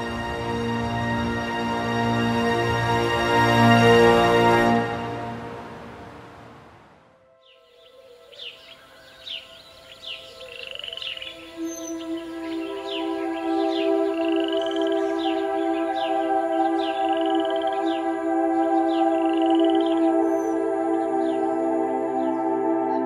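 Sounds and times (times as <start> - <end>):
ambient music drone: 0.0 - 23.0
bird chirping and whistling: 7.5 - 18.0.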